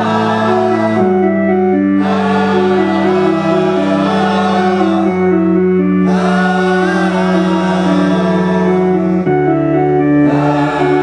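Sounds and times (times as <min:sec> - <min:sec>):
person singing into a microphone: 0:02.0 - 0:05.3, 0:06.0 - 0:09.3, 0:10.2 - 0:11.0.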